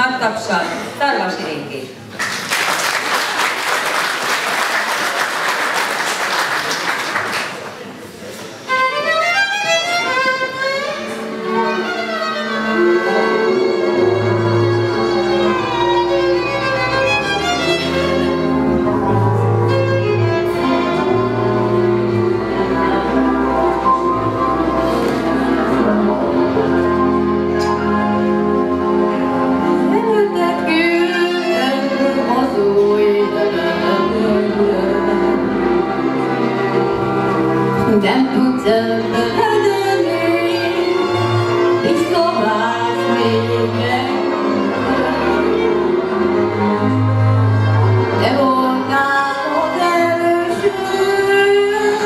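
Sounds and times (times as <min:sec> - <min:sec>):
applause: 0:02.1 - 0:07.9
band sustained accompaniment: 0:08.6 - 0:52.0
solo violin sliding melody: 0:08.6 - 0:52.0
woman singing: 0:29.8 - 0:35.7, 0:37.8 - 0:41.1, 0:41.8 - 0:45.3, 0:48.2 - 0:52.0.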